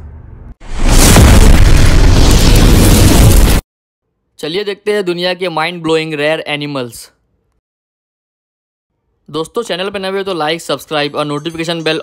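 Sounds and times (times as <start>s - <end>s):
explosion blast: 0.6s - 3.6s.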